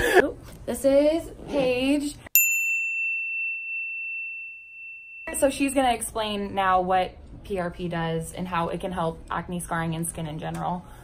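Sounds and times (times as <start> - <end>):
bell-like ding: 2.4 - 6.0.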